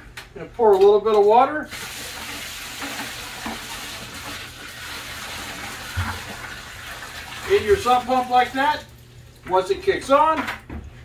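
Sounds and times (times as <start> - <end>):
water pouring from a bucket: 1.7 - 9.5.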